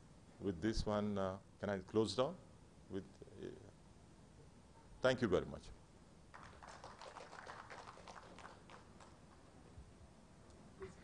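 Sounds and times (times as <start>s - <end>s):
faint scattered applause: 6.3s - 9.5s.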